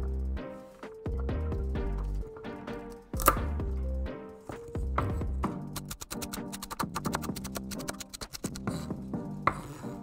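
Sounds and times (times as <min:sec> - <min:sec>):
background music with bass line: 0:00.0 - 0:10.0
knife chopping on wooden board: 0:03.2 - 0:03.5.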